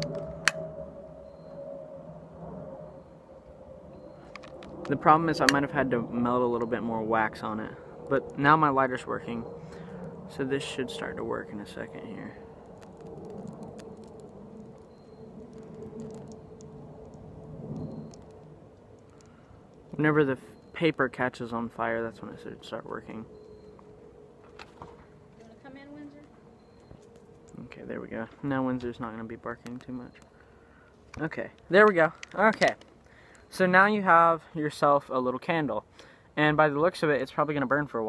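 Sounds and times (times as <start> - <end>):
wind buffeting microphone: 0.0 - 20.7
faint steady hum: 0.0 - 38.0
faint clicks: 12.4 - 20.7.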